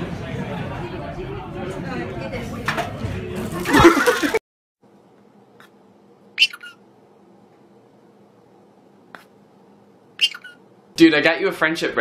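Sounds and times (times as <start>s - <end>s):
faint room hum: 3.9s - 12.0s
cat chirping meow: 6.4s - 6.8s, 10.2s - 10.6s.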